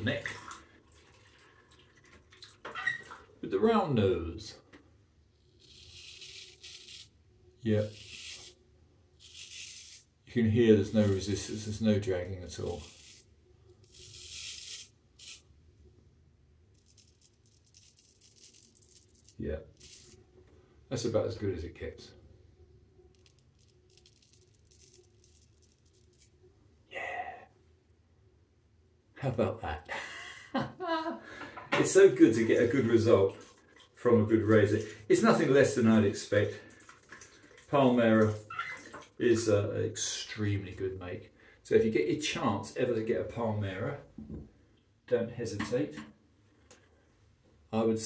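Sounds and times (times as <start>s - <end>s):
razor scraping stubble: 5.6s - 7.2s, 7.8s - 8.6s, 9.2s - 10.1s, 10.8s - 11.7s, 12.5s - 15.5s, 16.8s - 20.2s, 23.1s - 26.3s
brief vocal sound: 26.9s - 27.6s.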